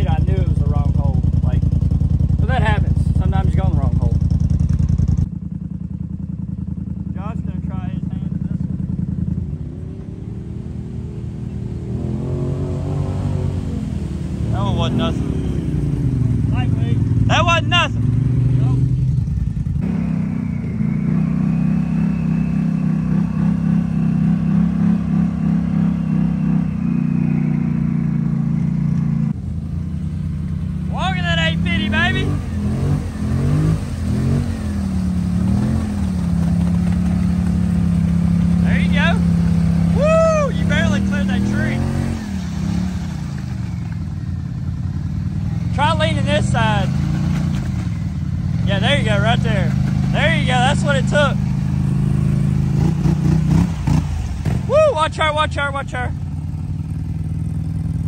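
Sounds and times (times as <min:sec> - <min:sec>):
atv engine revving: 0:00.0 - 0:58.0
tyres churning mud: 0:30.9 - 0:44.2, 0:45.4 - 0:56.0
people shouting: 0:39.9 - 0:41.0, 0:54.7 - 0:55.2.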